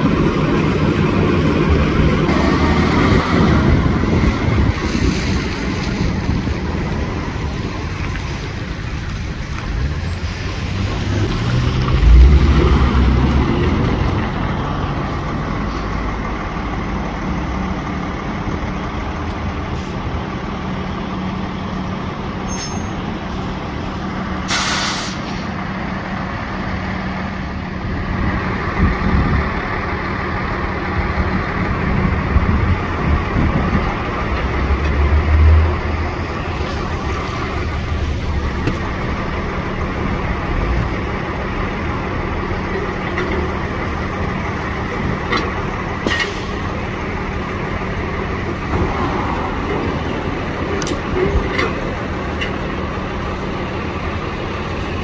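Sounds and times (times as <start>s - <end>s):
deep engine rumble: 0.0s - 55.0s
diesel engines idling: 0.0s - 55.0s
air hiss: 24.4s - 25.5s.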